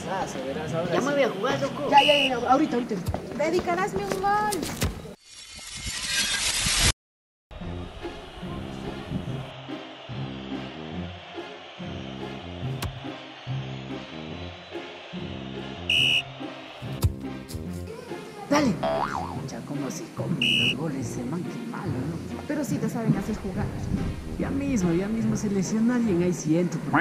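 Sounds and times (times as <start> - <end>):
background music with bass line: 7.6 - 21.2
short beep: 15.9 - 16.2, 20.4 - 20.8.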